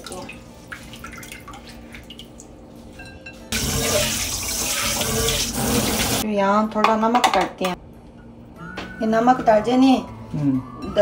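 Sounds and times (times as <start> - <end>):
tap water running into steel bowl: 3.6 - 6.2.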